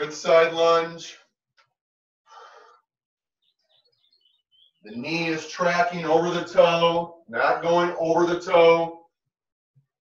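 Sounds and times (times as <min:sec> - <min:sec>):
person exhaling breath: 0:02.3 - 0:02.8.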